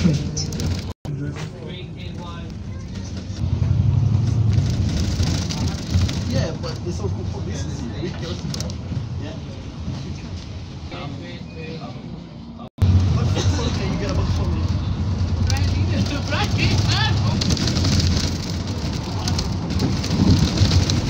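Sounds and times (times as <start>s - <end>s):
bus engine drone: 0.0s - 11.4s, 12.0s - 21.0s
passengers' voices: 4.9s - 21.0s.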